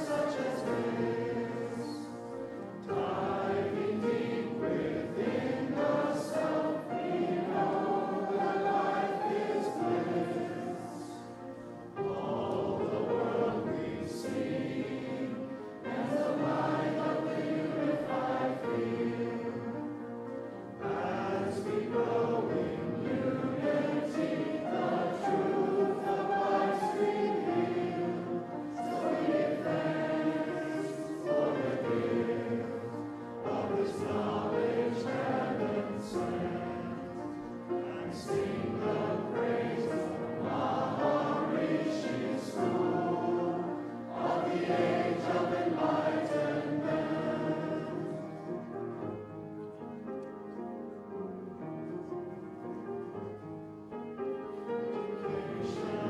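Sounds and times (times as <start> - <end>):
group singing sustained notes: 0.0 - 50.0, 54.5 - 56.0.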